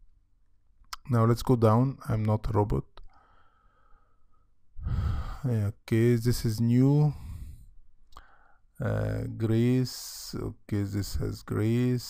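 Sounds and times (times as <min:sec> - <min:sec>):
person sighing: 0:04.8 - 0:05.5.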